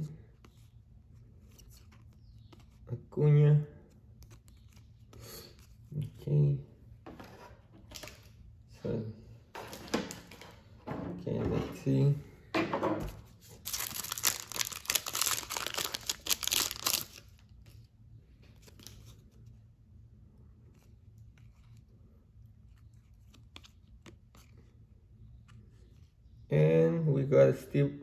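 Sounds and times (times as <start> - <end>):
foil wrapper ripping and crinkling: 13.5 - 17.4.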